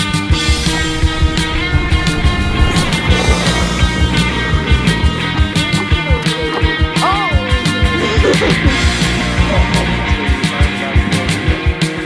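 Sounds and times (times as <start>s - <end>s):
sustained guitar tones: 0.4s - 6.8s
rock music: 0.4s - 7.5s.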